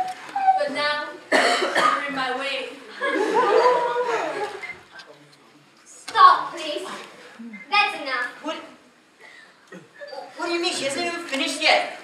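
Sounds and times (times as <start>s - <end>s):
woman coughing into voiced sound: 1.3s - 2.1s.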